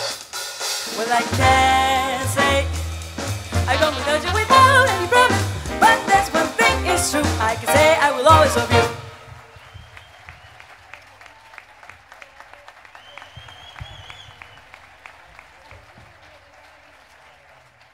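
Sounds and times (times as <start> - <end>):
audience applauding: 3.6 - 17.9.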